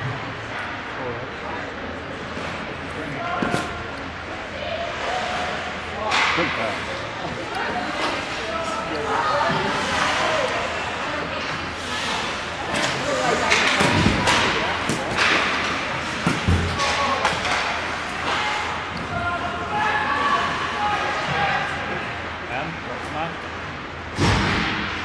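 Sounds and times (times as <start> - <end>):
hockey sticks and puck clacking: 6.1 - 6.8, 7.6 - 19.2.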